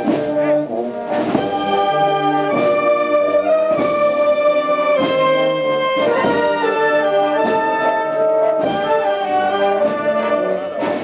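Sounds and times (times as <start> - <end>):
brass band playing a slow march: 0.0 - 11.0
percussion strokes: 0.0 - 11.0.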